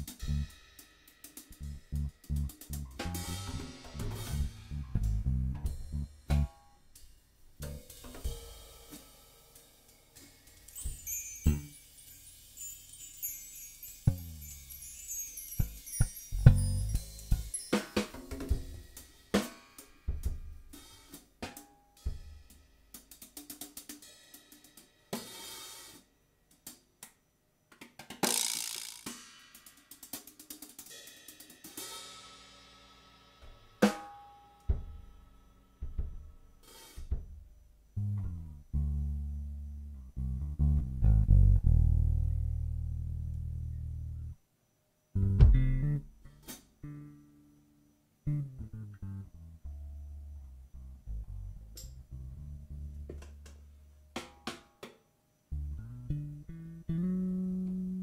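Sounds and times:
low bass notes: 0:00.0 - 0:00.6, 0:01.5 - 0:06.7, 0:10.9 - 0:11.7, 0:15.6 - 0:17.5, 0:38.0 - 0:44.4, 0:45.2 - 0:46.2, 0:48.3 - 0:53.6, 0:55.5 - 0:58.0
drum kit playing: 0:00.0 - 0:06.6, 0:15.6 - 0:21.2, 0:45.2 - 0:46.6.

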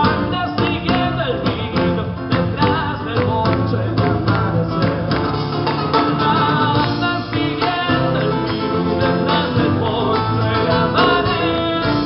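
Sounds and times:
live band music: 0:00.0 - 0:12.0
man singing: 0:00.0 - 0:12.0.

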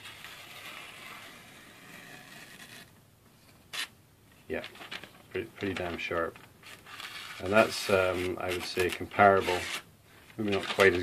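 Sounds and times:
paper rustle: 0:04.5 - 0:11.0.

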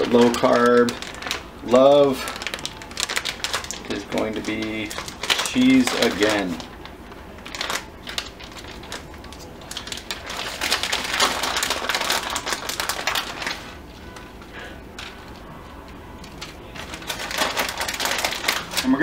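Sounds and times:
plastic bag crinkling: 0:00.0 - 0:19.0.

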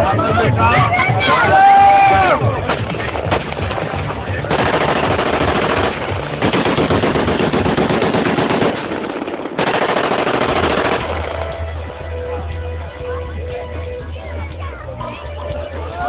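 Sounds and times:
automatic gunfire bursts: 0:04.5 - 0:11.6.

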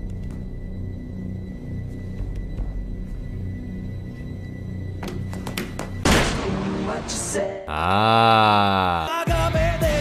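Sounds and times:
music: 0:00.0 - 0:10.0
person's voice: 0:07.7 - 0:09.3.

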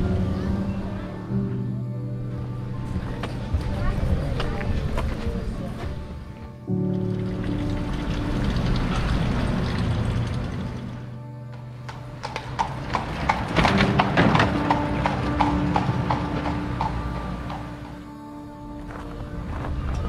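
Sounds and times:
background music: 0:00.0 - 0:20.0
horse hooves clip-clopping on pavement: 0:11.5 - 0:18.0.

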